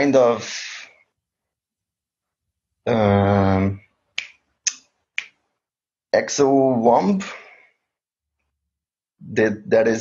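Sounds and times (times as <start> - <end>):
finger snaps: 4.2 - 5.4.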